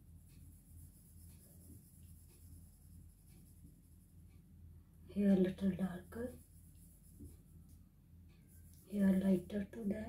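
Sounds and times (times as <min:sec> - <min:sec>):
pencil scratching on paper: 0:00.0 - 0:04.2, 0:05.3 - 0:07.6.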